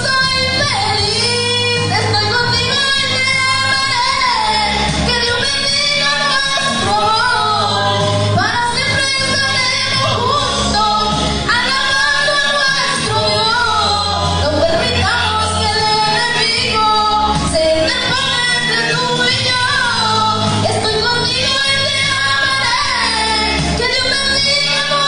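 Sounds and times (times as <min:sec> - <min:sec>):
amplified accompaniment with bass: 0:00.0 - 0:25.0
woman singing praise song: 0:00.0 - 0:25.0.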